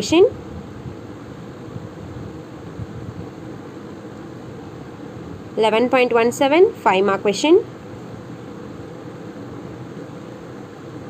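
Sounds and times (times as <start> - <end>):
low rumble of room noise: 0.0 - 11.0.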